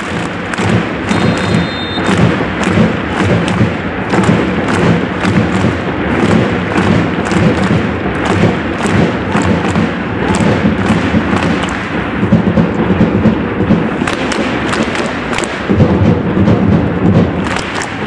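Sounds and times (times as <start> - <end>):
drums beating steady rhythm: 0.0 - 18.0
stadium crowd noise: 0.0 - 18.0.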